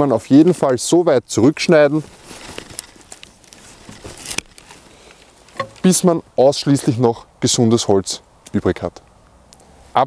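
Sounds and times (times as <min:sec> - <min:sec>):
rustling of branches and shears: 0:00.0 - 0:06.4
pruning shears clicking: 0:03.9 - 0:06.0.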